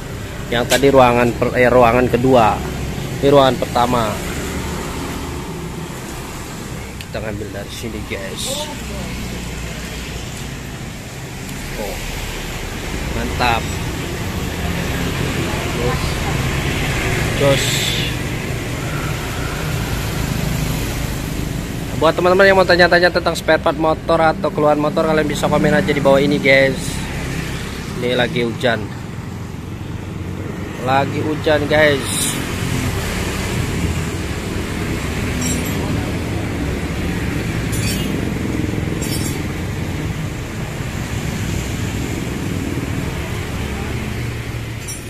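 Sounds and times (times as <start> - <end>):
traffic on wet road: 0.0 - 45.0
steady rain on street: 13.7 - 21.9, 39.8 - 44.8.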